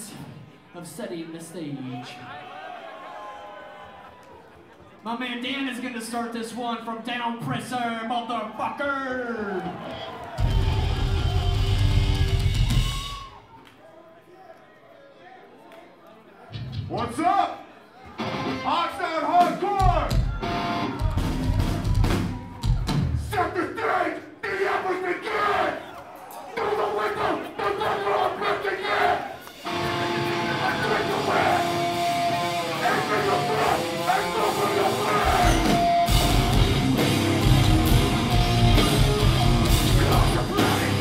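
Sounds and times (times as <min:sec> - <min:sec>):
hardcore band playing: 0:10.4 - 0:13.3, 0:18.2 - 0:23.3, 0:29.5 - 0:41.0
shouted vocals: 0:17.2 - 0:29.5, 0:30.1 - 0:41.0
ringing guitar: 0:29.6 - 0:34.4
drum and bass hits: 0:35.2 - 0:41.0.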